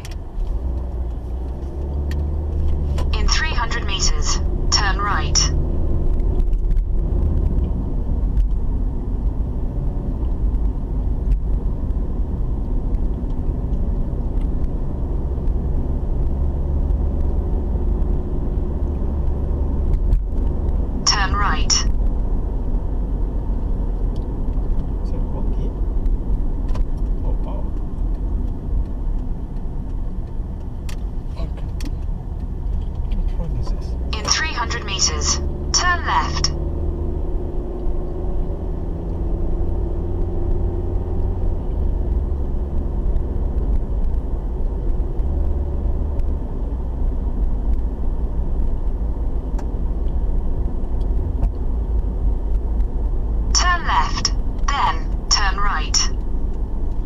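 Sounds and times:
car interior road rumble: 0:00.0 - 0:57.0.

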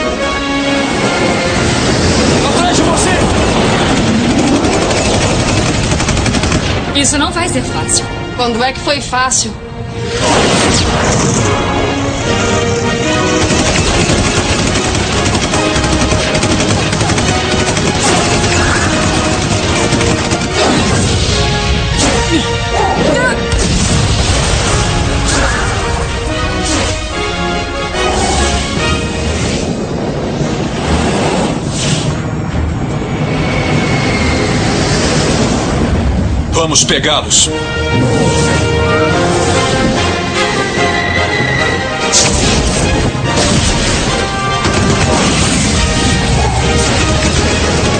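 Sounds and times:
aircraft engines roaring: 0:00.0 - 0:08.4, 0:27.4 - 0:45.1
rushing wind: 0:00.0 - 0:08.4, 0:23.7 - 0:47.9
action cartoon music: 0:00.0 - 0:47.9
rapid gunfire: 0:02.4 - 0:07.4, 0:13.1 - 0:22.1, 0:42.2 - 0:47.9.

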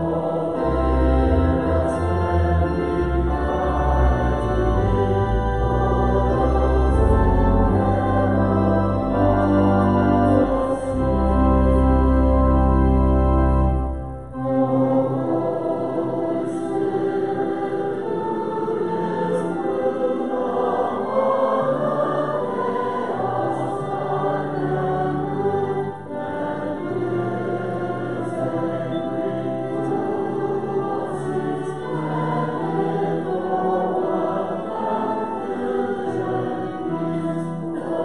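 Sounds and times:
long held bass notes: 0:00.0 - 0:14.8
congregation singing a hymn: 0:00.0 - 0:38.0
instrumental accompaniment: 0:00.0 - 0:38.0.

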